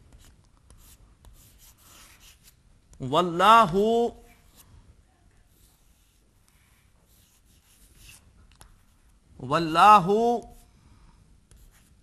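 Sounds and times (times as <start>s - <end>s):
chalk writing on chalkboard: 0.1s - 2.6s, 5.4s - 9.0s, 11.5s - 12.0s
man speaking: 3.0s - 4.3s, 9.4s - 10.6s.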